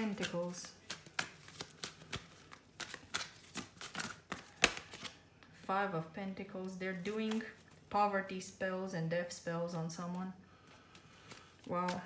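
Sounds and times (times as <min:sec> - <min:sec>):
cards clicking and rubbing: 0:00.0 - 0:05.2, 0:10.9 - 0:12.0.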